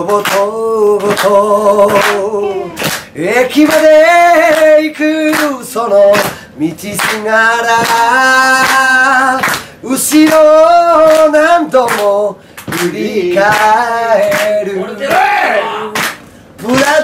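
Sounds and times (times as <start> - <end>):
hand claps: 0.0 - 15.3, 15.9 - 17.0
man singing a cappella: 0.0 - 16.0, 16.6 - 17.0.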